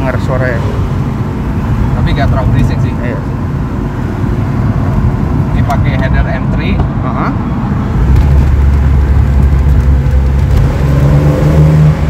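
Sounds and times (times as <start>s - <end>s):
car engine drone from inside cabin: 0.0s - 12.0s.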